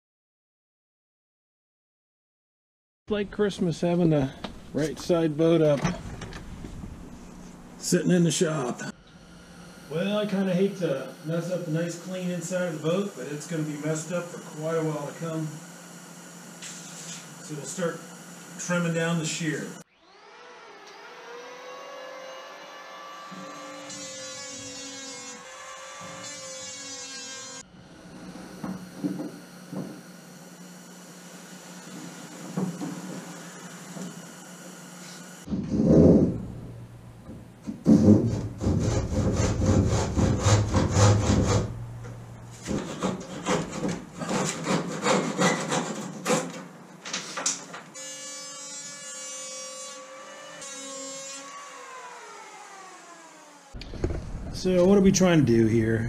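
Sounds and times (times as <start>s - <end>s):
electric planer whine: 8.8s - 35.5s, 48.0s - 54.2s
handsaw cutting wood: 21.4s - 28.6s, 37.8s - 41.8s, 42.6s - 46.5s.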